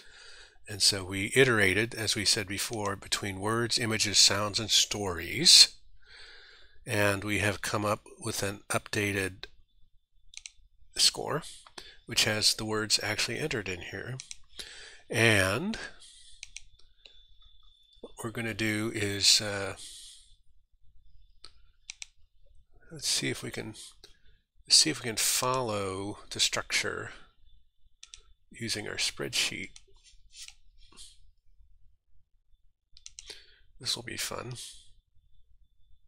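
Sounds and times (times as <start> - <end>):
computer mouse clicks: 10.3 - 10.6, 14.1 - 14.6, 16.3 - 17.8, 21.4 - 22.6, 28.0 - 28.3, 29.6 - 31.1, 33.0 - 33.4.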